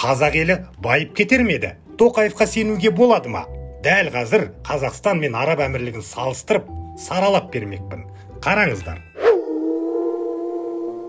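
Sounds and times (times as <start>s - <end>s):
wolf howling: 9.2s - 11.0s.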